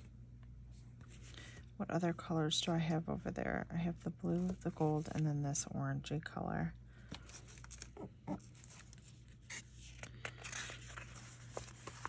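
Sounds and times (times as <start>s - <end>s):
paper sticker sheet rustling: 7.0s - 12.0s.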